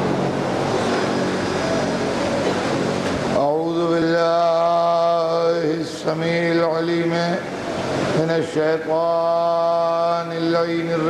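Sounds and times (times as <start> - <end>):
man chanting: 3.4 - 7.5, 8.2 - 11.0.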